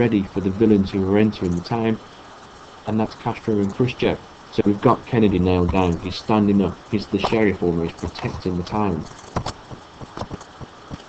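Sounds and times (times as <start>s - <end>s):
low steady hiss: 0.0s - 11.0s
faint clicks: 3.5s - 3.9s, 6.8s - 11.0s.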